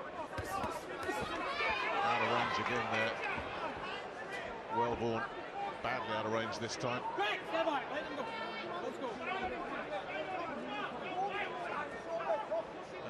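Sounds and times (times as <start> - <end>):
crowd shouting and yelling: 0.0 - 13.0.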